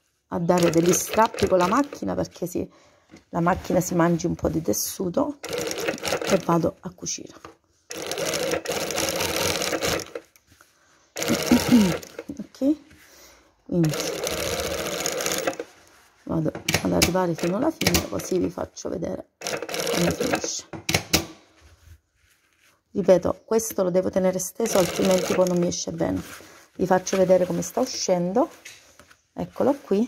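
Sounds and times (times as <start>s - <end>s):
sewing machine stitching: 0.5s - 2.2s, 5.4s - 6.6s, 7.9s - 10.3s, 11.2s - 12.4s, 13.8s - 15.9s, 16.6s - 18.6s, 19.4s - 21.3s, 24.6s - 25.8s.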